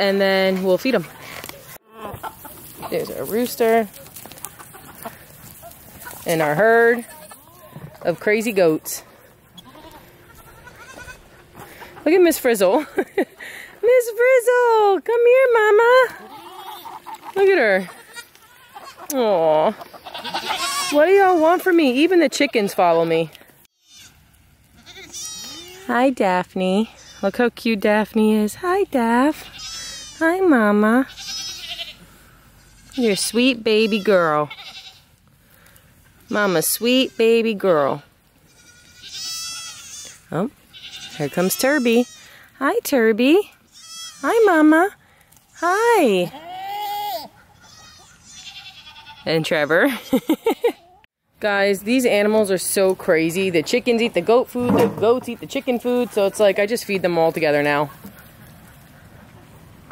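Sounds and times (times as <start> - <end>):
goat bleating: 6.2 - 7.8, 9.5 - 11.8, 16.0 - 19.2, 19.8 - 26.0, 26.7 - 27.4, 29.1 - 35.1, 36.2 - 42.5, 43.7 - 44.8, 45.5 - 51.1.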